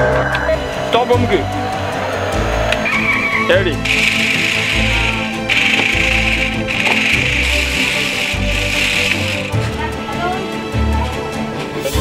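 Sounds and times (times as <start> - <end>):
background music: 0.0 - 12.0
toy car electric motors whirring: 3.8 - 9.8.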